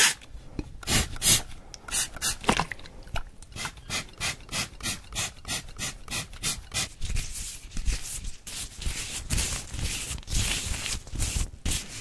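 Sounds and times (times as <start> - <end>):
hand rubbing strokes: 3.6 - 12.0.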